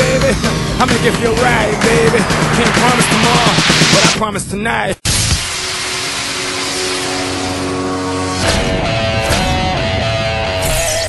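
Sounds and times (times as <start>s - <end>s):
rushing whoosh: 0.0s - 4.3s.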